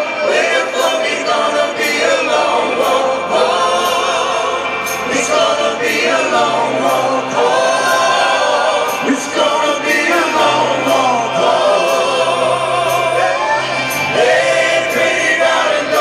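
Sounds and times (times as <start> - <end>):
backing voices chorus: 0.0 - 16.0
male lead vocal: 0.0 - 16.0
rock band playing live: 0.0 - 16.0.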